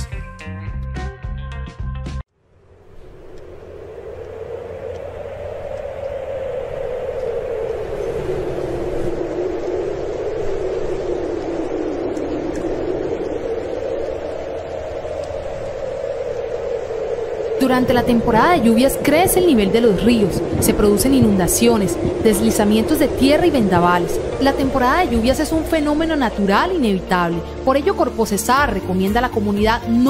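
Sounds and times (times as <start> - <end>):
storm wind howling: 2.4 - 30.0.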